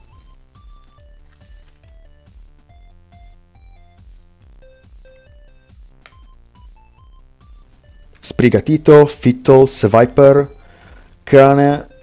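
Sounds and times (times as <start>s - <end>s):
electronic video game music: 0.0s - 12.0s.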